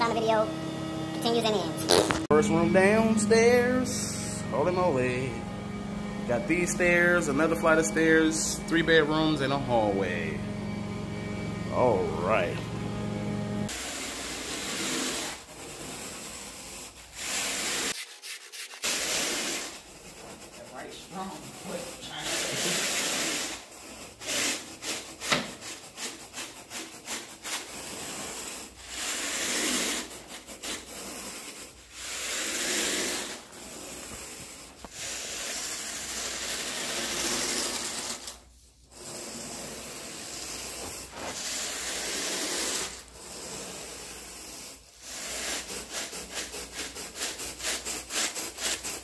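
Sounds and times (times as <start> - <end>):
carpet rake dragged across carpet: 1.5 - 5.4, 6.3 - 10.4, 13.6 - 49.0.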